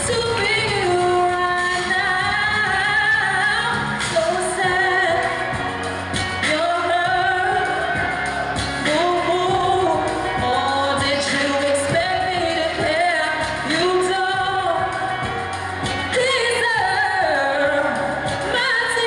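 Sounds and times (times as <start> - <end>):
person singing into microphone: 0.0 - 19.0.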